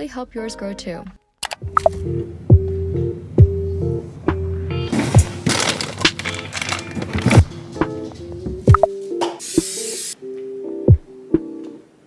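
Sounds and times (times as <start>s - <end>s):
music with deep beat: 1.7s - 4.7s, 10.8s - 11.5s
spray can hissing: 9.2s - 10.2s.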